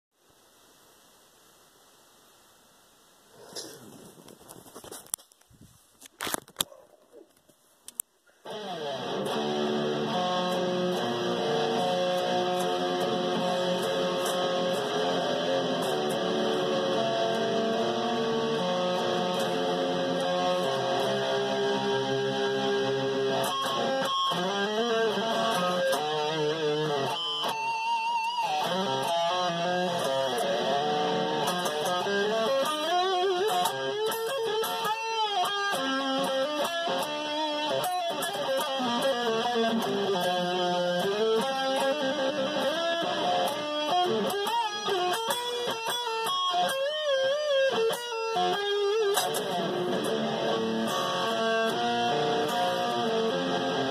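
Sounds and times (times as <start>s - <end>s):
electric guitar lead playing: 8.4s - 53.9s.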